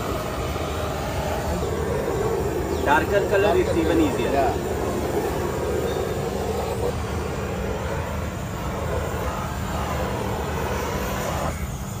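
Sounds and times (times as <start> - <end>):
paint sprayer hissing: 0.0 - 12.0
steady low drone: 0.0 - 12.0.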